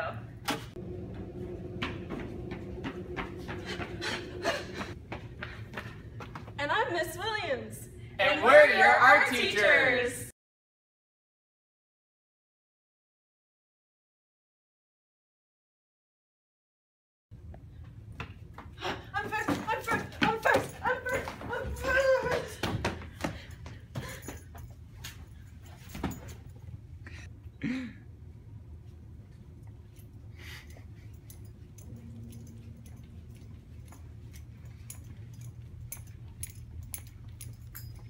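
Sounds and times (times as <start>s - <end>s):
low room hum: 0.0s - 10.3s, 17.3s - 38.0s
woman yelping and whimpering: 18.9s - 22.6s
footsteps with metallic jingle: 19.2s - 27.3s, 29.6s - 38.0s.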